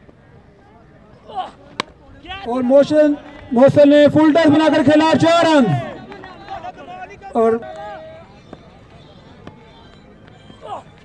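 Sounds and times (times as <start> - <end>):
distant spectators' voices: 0.0 - 11.0.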